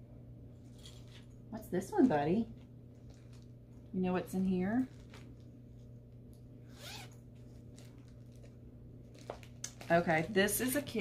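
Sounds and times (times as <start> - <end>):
zipper being pulled open: 6.6 - 7.2.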